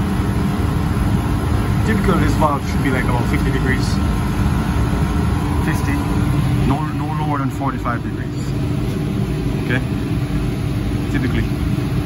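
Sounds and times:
air conditioning unit humming: 0.0s - 12.0s.

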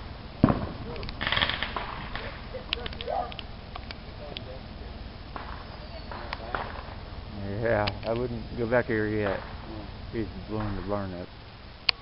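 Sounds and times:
firework bang: 0.0s - 3.2s, 5.2s - 7.1s, 8.7s - 11.3s
firework crackling: 0.0s - 12.0s.

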